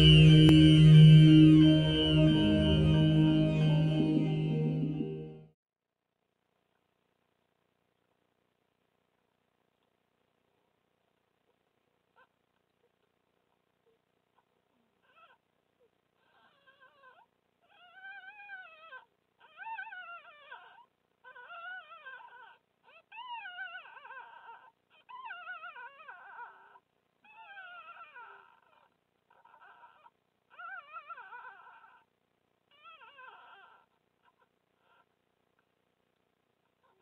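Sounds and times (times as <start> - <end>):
fox cubs whimpering: 16.2 - 32.1, 32.7 - 35.1.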